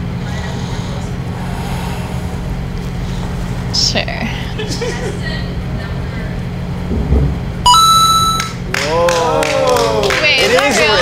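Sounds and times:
low steady hum: 0:00.0 - 0:08.7.

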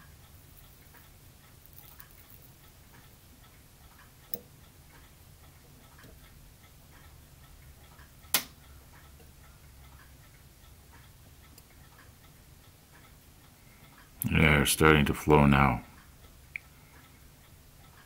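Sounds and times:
faint even ticking: 0:00.0 - 0:14.4
low steady hum: 0:00.0 - 0:18.0
sharp clicks: 0:08.2 - 0:08.6.

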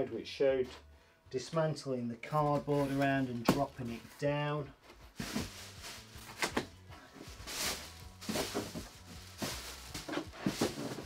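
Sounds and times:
plastic bag rustling: 0:05.1 - 0:11.0.

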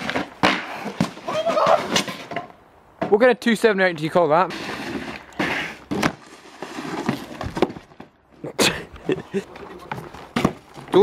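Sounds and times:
snowboard knocking on wooden boards: 0:09.9 - 0:11.0.

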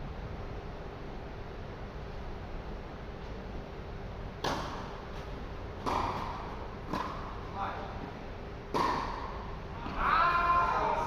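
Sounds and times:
tennis balls struck by rackets: 0:04.4 - 0:07.5, 0:08.6 - 0:10.0.

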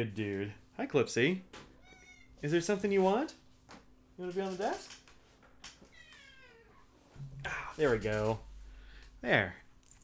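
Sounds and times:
cat meowing: 0:01.8 - 0:02.4, 0:05.8 - 0:06.9.

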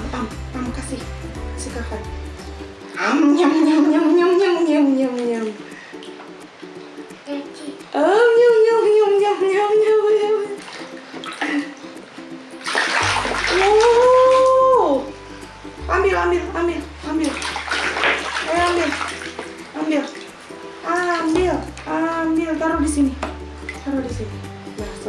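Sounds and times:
water splashing in plastic tub: 0:10.6 - 0:11.9, 0:12.6 - 0:15.1, 0:17.1 - 0:25.0.

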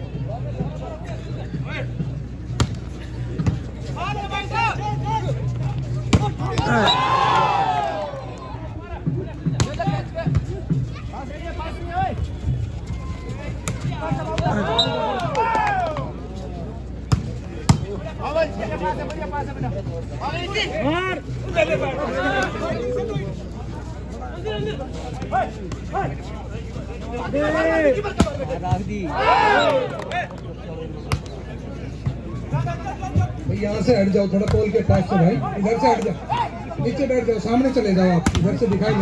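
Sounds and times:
outdoor crowd chatter: 0:00.0 - 0:39.0
people shouting: 0:06.2 - 0:08.6, 0:12.9 - 0:16.1, 0:29.1 - 0:30.0, 0:36.2 - 0:36.7
volleyball slaps: 0:38.2 - 0:38.6.

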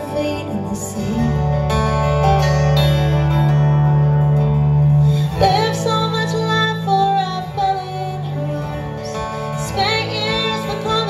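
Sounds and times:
woman singing: 0:00.0 - 0:01.9, 0:05.2 - 0:11.0
lap steel guitar chords: 0:00.0 - 0:11.0.

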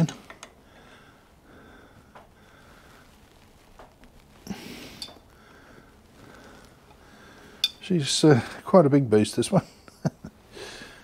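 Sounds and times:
faint breathing: 0:00.4 - 0:08.7, 0:10.5 - 0:11.0.

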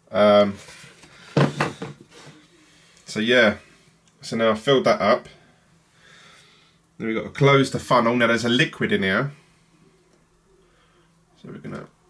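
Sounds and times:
plastic tube knocking and clattering: 0:01.3 - 0:02.0.

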